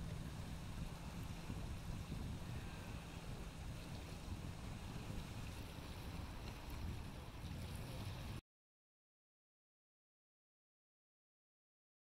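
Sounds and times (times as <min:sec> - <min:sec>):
small waves on rocky shore: 0:00.0 - 0:08.4
wind noise on microphone: 0:00.0 - 0:08.4.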